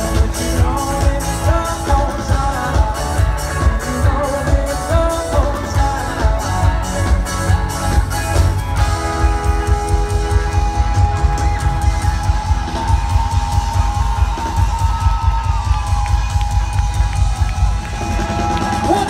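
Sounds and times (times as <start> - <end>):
loud live band music: 0.0 - 19.0
crowd cheering: 7.8 - 19.0.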